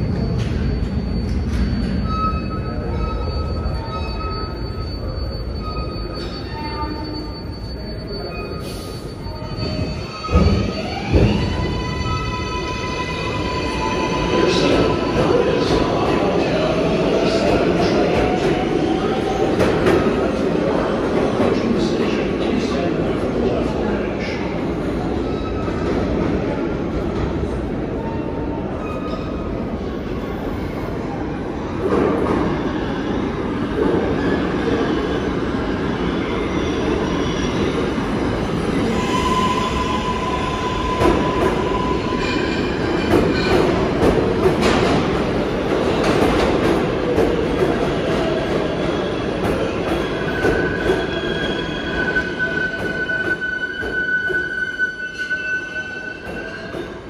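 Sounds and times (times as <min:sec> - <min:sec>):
train wheel squeal: 0:00.2 - 0:21.0, 0:28.0 - 0:31.1, 0:33.8 - 0:44.1, 0:48.0 - 0:57.0
train wheels rumbling on rail: 0:09.4 - 0:57.0.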